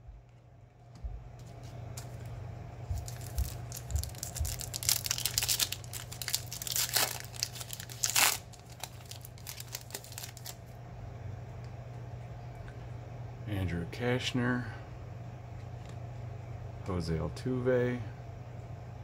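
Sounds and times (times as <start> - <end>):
steady low hum: 0.0 - 19.0
foil wrapper crinkling and tearing: 3.0 - 10.6.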